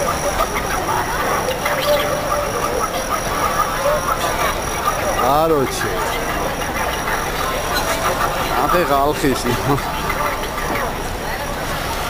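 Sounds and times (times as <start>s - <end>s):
city traffic noise: 0.0s - 12.0s
crowd babble: 0.0s - 12.0s.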